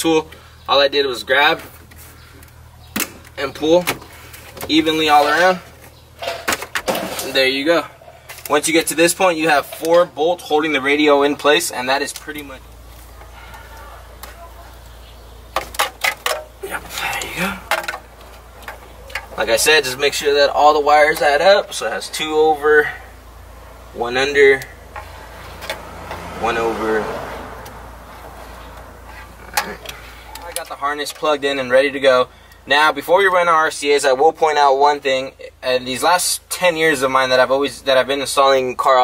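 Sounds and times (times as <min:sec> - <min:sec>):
steady low hum: 0:00.2 - 0:26.2
handling plastic connectors: 0:17.2 - 0:19.7.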